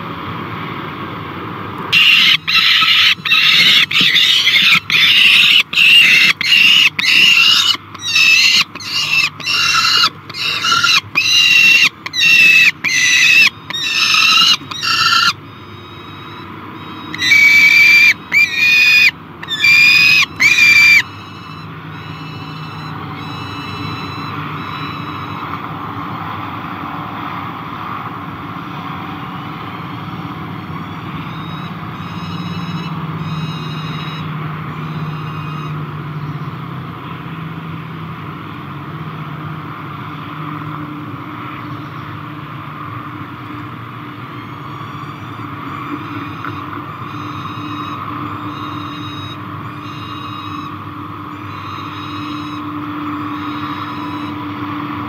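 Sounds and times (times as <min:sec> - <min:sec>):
falcon chick begging wails: 0:02.0 - 0:15.5, 0:16.9 - 0:21.3.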